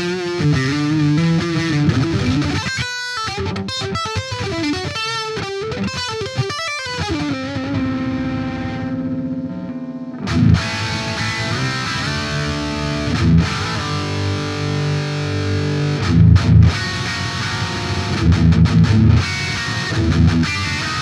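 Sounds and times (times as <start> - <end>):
distorted electric guitar: 0.0 - 21.0.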